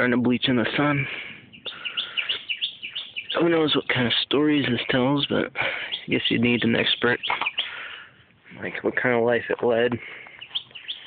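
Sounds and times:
bird chirping: 0.7 - 8.7, 10.0 - 11.0.

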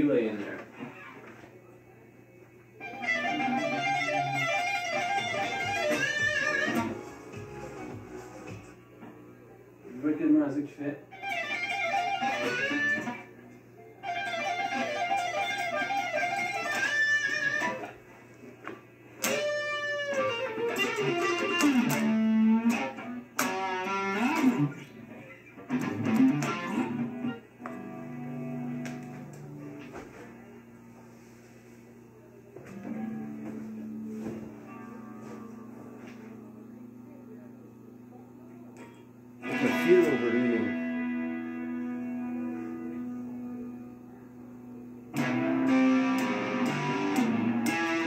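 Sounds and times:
low mains hum: 0.0 - 48.0
electric guitar with delay: 2.7 - 7.0, 11.1 - 18.0, 19.1 - 30.7, 32.6 - 48.0.

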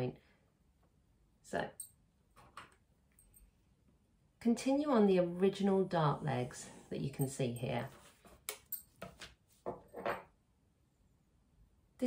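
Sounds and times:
plastic ruler tapping and rustling: 8.2 - 9.8.

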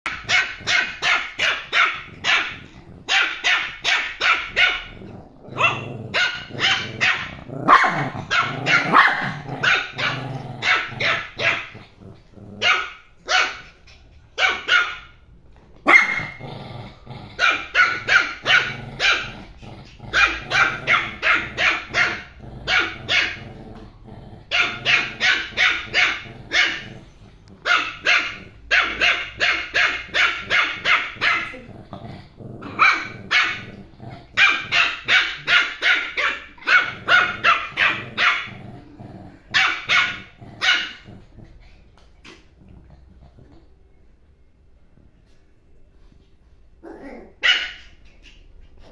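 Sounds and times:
puppy barking high-pitched yaps: 0.1 - 4.9, 5.6 - 11.7, 12.6 - 13.7, 14.4 - 15.1, 15.9 - 16.3, 17.4 - 19.3, 20.1 - 23.4, 24.5 - 26.9, 27.6 - 31.4, 32.8 - 33.7, 34.4 - 38.5, 39.6 - 41.0, 47.4 - 48.0.

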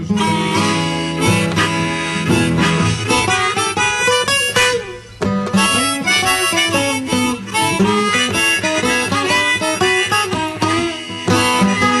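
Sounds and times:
acoustic guitar: 0.0 - 12.0
harmonica: 0.0 - 12.0.

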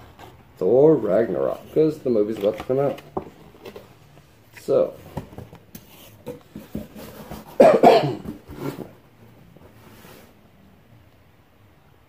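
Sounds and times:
cardboard and paper rustling: 0.0 - 7.6, 8.2 - 9.0
man coughing: 7.6 - 8.4.

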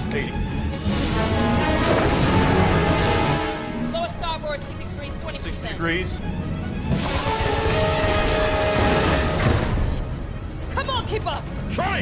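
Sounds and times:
orchestral score with held notes: 0.0 - 10.0.

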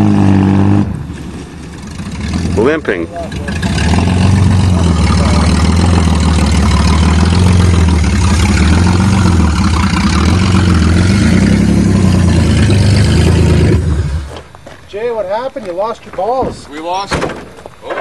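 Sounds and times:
car engine droning: 0.0 - 14.6.

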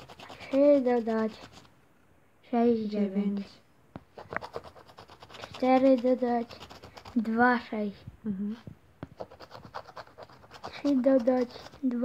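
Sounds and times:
scraping of scratch card: 4.2 - 7.3, 9.2 - 11.9.

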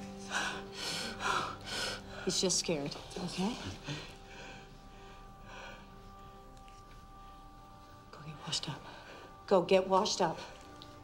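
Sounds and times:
faint held music drone: 0.0 - 11.0.

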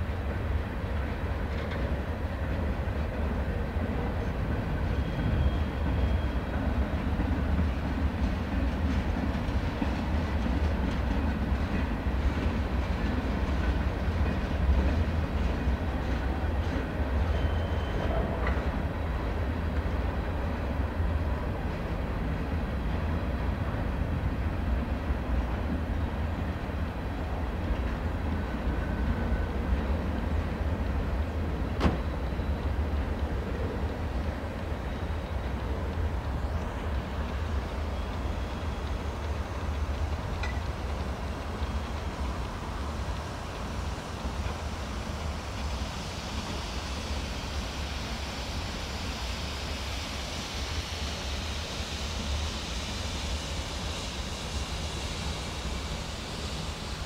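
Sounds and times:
freight train wheels rumbling on rail: 0.0 - 57.0.

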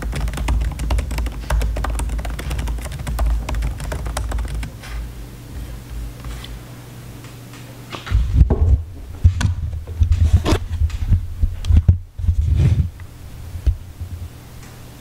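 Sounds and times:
microphone handling thumps: 8.0 - 13.0.

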